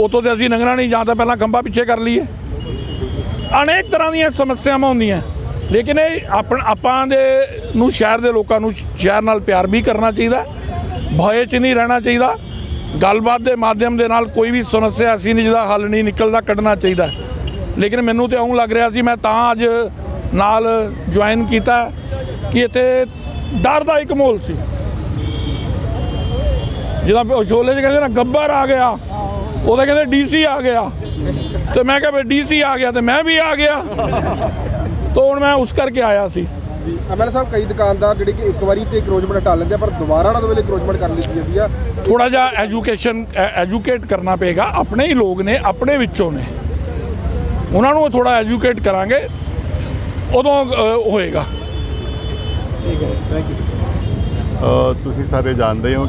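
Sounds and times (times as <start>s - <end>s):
man talking: 0.0s - 2.4s, 3.4s - 24.6s, 27.0s - 46.8s, 47.5s - 49.4s, 50.2s - 51.7s, 52.7s - 53.7s, 54.4s - 56.0s
street traffic rumble: 0.0s - 56.0s
crowd voices murmuring: 33.6s - 35.2s.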